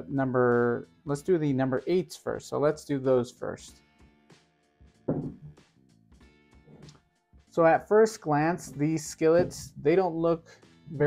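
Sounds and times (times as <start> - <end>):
skillet thunk on wooden table: 5.1 - 5.5.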